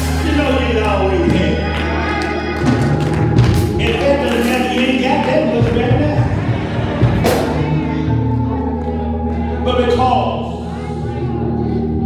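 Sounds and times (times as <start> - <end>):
gospel singing: 0.0 - 12.0
held instrumental chords: 0.0 - 12.0.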